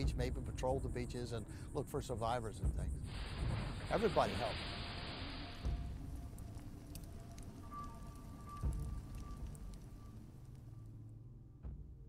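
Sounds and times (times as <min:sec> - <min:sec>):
low droning music: 0:00.0 - 0:12.0
faint crackles: 0:03.1 - 0:11.0.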